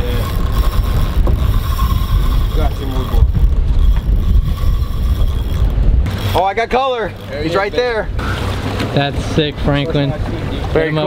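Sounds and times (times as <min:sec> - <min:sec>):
boat engine hum: 0:00.0 - 0:11.0
wind rumbling on microphone: 0:00.0 - 0:11.0.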